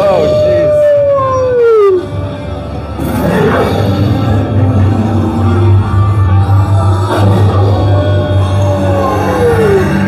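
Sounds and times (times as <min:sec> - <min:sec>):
wolf-like howl: 0:00.0 - 0:02.4, 0:03.0 - 0:10.0.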